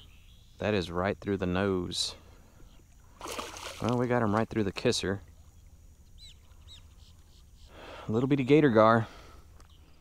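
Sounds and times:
bird chirping: 0:00.0 - 0:01.0, 0:05.3 - 0:09.0
low steady background noise: 0:00.0 - 0:10.0.

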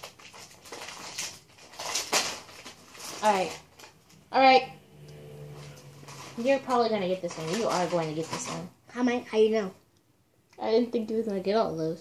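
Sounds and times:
rustles and handling noises: 0:00.0 - 0:04.3, 0:05.4 - 0:09.3.

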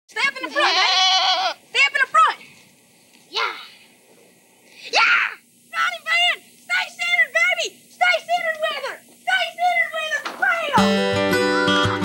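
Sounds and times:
voices: 0:00.1 - 0:11.0
goat bleating: 0:00.4 - 0:01.6.

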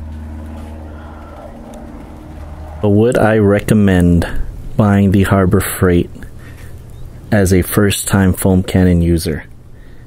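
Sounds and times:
small engine humming: 0:00.0 - 0:04.7.

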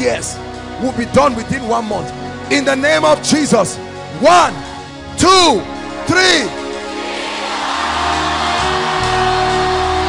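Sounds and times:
sustained worship music chords: 0:00.0 - 0:10.0
congregation shouting: 0:06.5 - 0:10.0.

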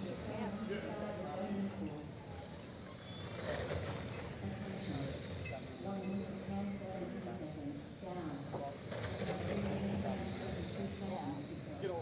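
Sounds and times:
radio-controlled cars racing: 0:02.8 - 0:06.6, 0:08.7 - 0:11.8.

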